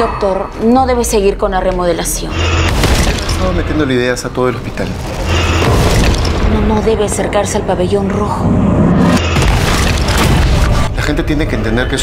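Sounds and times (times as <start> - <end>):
dark music: 0.0 - 12.0.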